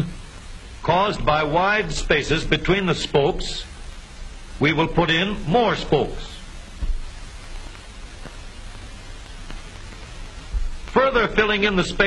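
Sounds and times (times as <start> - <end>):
film soundtrack hiss and crackle: 0.0 - 12.0.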